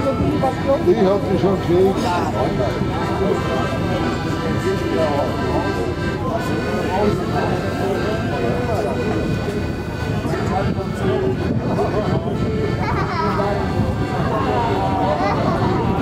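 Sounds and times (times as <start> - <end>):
crowd talking: 0.0 - 16.0
music of steady held notes: 0.0 - 16.0.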